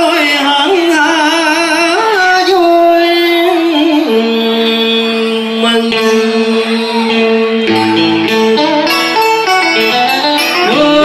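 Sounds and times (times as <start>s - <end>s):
plucked guitar with pitch bends: 0.0s - 11.0s.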